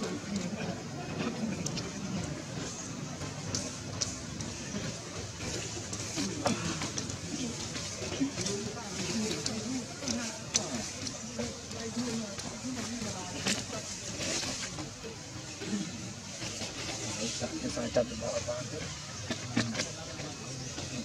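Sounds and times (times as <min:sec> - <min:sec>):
murmuring voices: 0:00.0 - 0:21.0.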